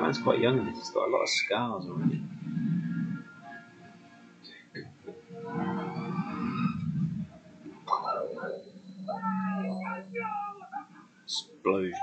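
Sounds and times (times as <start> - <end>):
deep rumble of film score: 0.0 - 11.3
low steady hum: 0.0 - 12.0.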